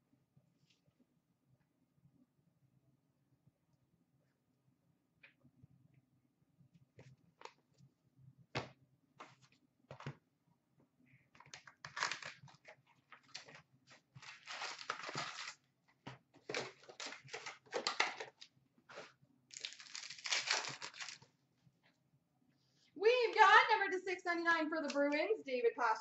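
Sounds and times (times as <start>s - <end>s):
foil packs tearing and crinkling: 11.6s - 12.6s, 14.2s - 15.6s, 16.5s - 18.4s, 19.0s - 21.3s.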